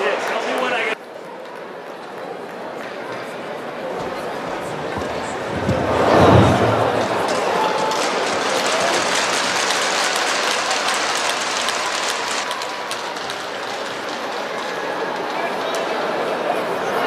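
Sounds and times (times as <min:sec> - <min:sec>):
echoing crowd voices: 0:00.0 - 0:17.0.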